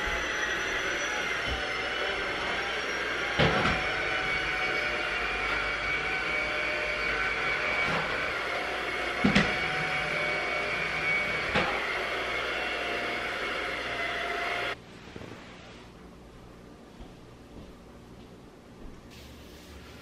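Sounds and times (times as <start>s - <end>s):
vacuum motor whine: 0.0s - 14.8s.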